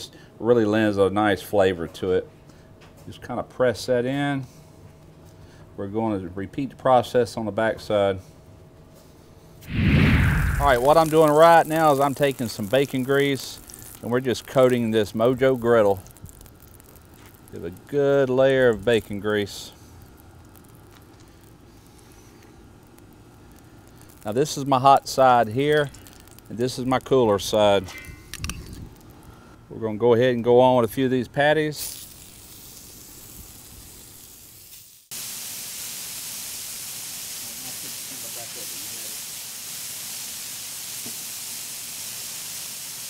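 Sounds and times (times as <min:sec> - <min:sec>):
grease sizzling on griddle: 0:09.6 - 0:29.5, 0:31.4 - 0:43.0.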